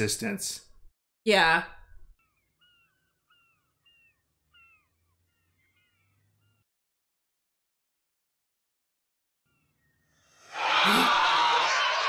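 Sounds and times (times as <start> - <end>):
faint birds calling: 2.1 - 6.7.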